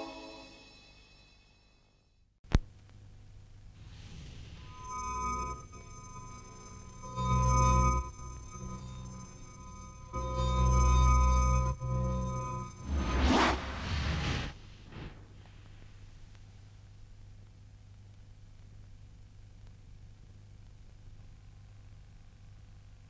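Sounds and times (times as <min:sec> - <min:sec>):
deep bass swells: 0:03.8 - 0:15.4
shimmering synth tones: 0:04.0 - 0:14.0
rushing whoosh sweep: 0:12.8 - 0:15.3.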